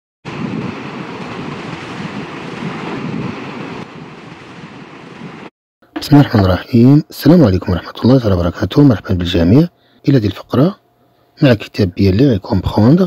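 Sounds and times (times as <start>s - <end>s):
steady rushing noise: 0.3s - 6.6s.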